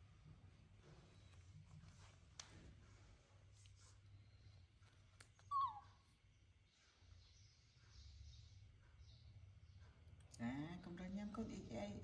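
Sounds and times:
baby monkey squeak: 5.5 - 6.0.

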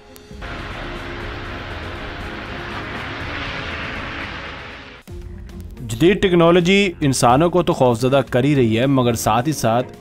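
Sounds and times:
water cannon jet roaring: 0.4 - 5.1.

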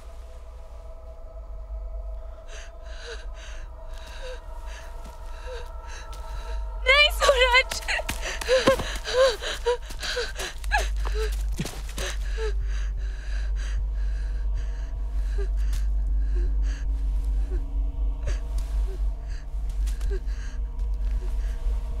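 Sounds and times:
low steady drone: 0.0 - 22.0
woman gasping and whimpering: 2.4 - 14.2.

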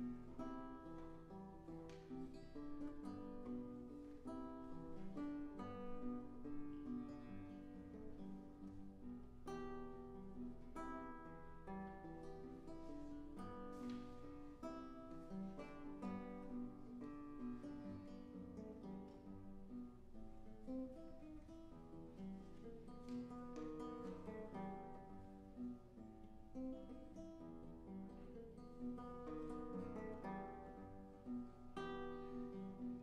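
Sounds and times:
classical guitar playing: 0.0 - 33.0.

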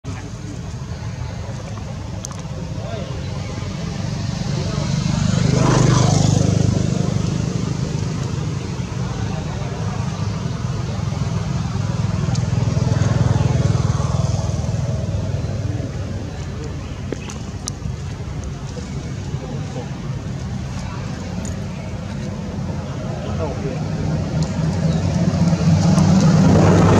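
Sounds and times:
vehicle engine passing by: 2.8 - 16.7, 18.7 - 26.9.

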